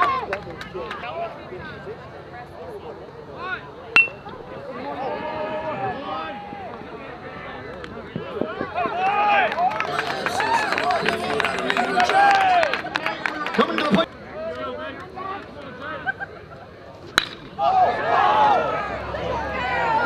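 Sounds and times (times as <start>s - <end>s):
bat cracking against ball: 17.1s - 17.6s
players and fans shouting: 17.6s - 20.0s.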